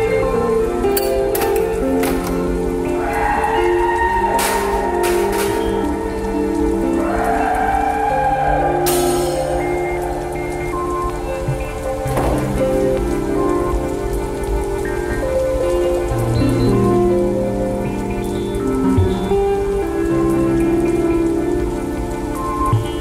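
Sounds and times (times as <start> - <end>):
rain pattering: 0.0 - 23.0
slow instrumental music: 0.0 - 23.0.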